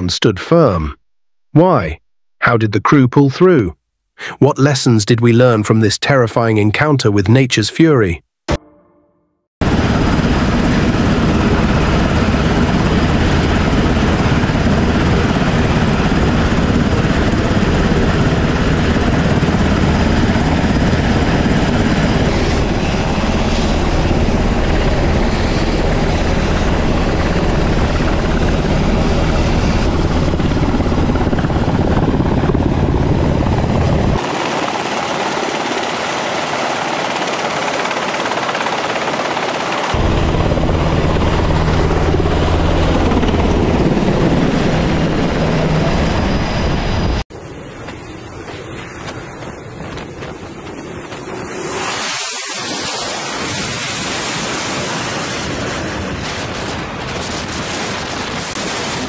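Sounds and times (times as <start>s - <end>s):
helicopter rotor thrum: 9.6s - 47.2s
turbine rushing hiss: 51.2s - 55.1s.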